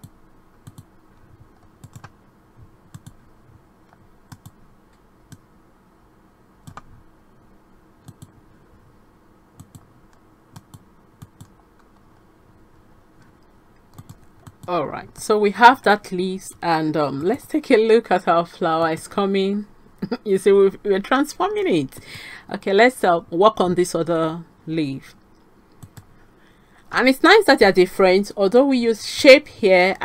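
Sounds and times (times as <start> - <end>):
computer mouse clicks: 0.0 - 0.9, 1.6 - 2.2, 2.9 - 3.2, 3.9 - 5.4, 6.6 - 6.9, 8.0 - 8.4, 9.6 - 12.2, 13.2 - 14.7, 25.4 - 26.1
faint steady hum: 0.0 - 30.0.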